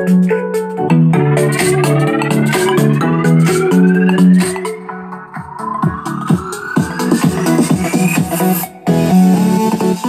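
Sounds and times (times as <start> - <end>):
electronic dance music: 0.0 - 10.0
rising synth sweep: 0.7 - 8.7.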